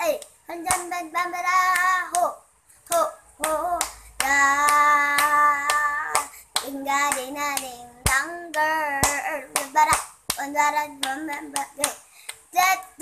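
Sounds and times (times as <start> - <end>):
girl singing: 0.0 - 13.0.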